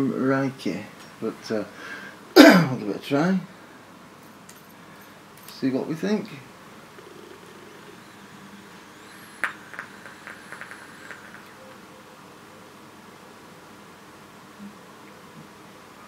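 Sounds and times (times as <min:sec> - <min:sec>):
faint high whine of air: 0:00.0 - 0:16.0
e-liquid crackling on coils: 0:06.2 - 0:11.9.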